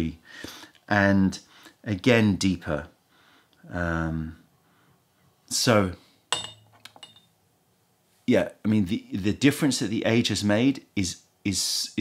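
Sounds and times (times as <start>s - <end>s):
ceramic cup clinking on wooden tray: 6.3s - 7.3s.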